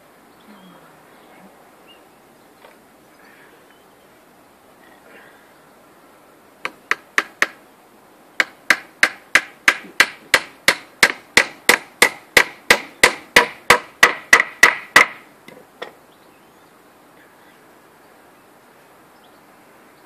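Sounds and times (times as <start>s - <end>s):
hammer striking wood: 6.6s - 7.6s, 8.4s - 15.2s.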